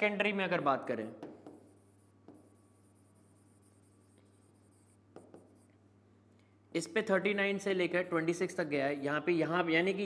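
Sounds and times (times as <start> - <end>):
pen scratching on screen: 1.2 - 5.8.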